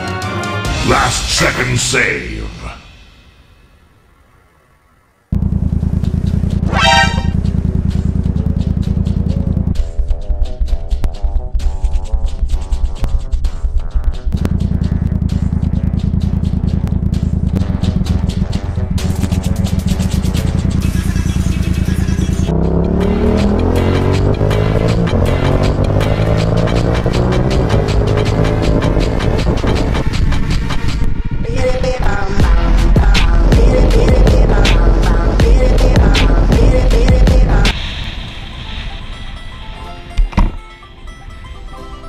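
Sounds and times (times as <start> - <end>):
background music: 0.0 - 3.7, 6.7 - 7.4, 8.6 - 42.0
loud low engine rumble: 5.1 - 12.4, 13.7 - 42.0
vehicle horn toot: 6.6 - 7.6.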